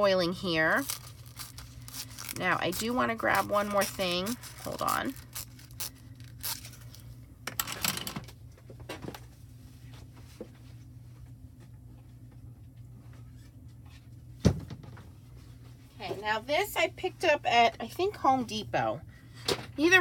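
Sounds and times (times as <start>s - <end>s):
steady low hum: 0.0s - 20.0s
foil rustling and clicking: 0.4s - 7.1s.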